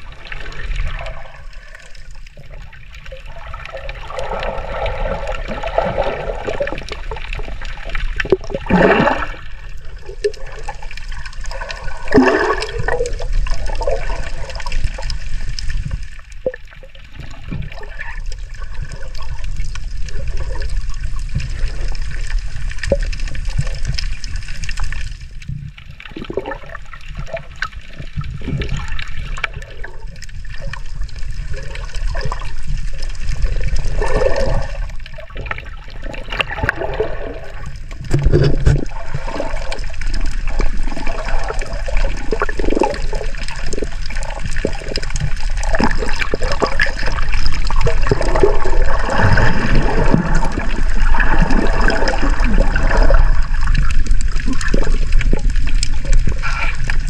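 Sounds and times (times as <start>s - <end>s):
bubbling water: 0.0s - 57.0s
water sloshing underwater: 0.0s - 57.0s.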